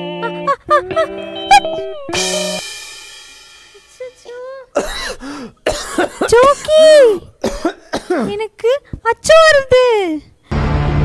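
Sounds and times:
person clearing throat: 4.7s - 8.4s
person coughing: 4.7s - 8.5s.

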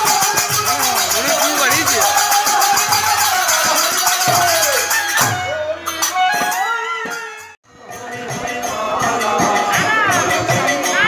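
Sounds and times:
hand drum beating: 0.0s - 7.2s.

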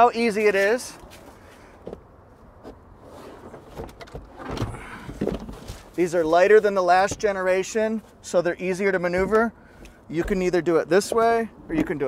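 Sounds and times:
seat thumps and rustling: 1.8s - 8.2s, 9.1s - 9.5s, 10.2s - 12.0s.

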